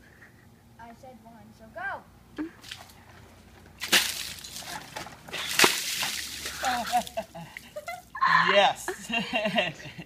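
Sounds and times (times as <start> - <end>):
ice water splashing: 3.8 - 8.1
water splattering and sloshing: 3.8 - 8.1.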